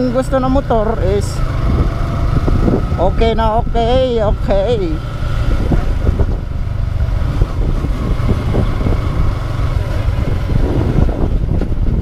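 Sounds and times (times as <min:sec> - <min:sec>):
motorcycle engine running: 0:00.0 - 0:12.0
wind rumble on microphone: 0:00.0 - 0:12.0.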